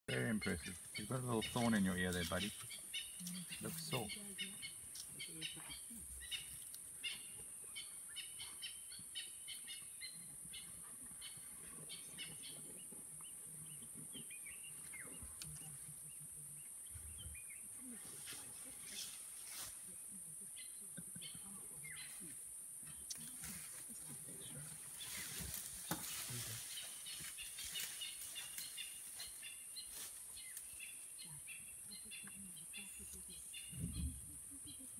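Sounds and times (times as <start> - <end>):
bird chirps and calls: 0.2 - 12.7.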